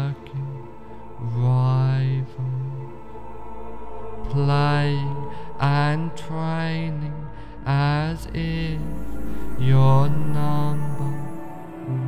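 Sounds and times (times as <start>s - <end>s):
low voice chanting: 0.0s - 12.0s
steady drone: 0.0s - 12.0s.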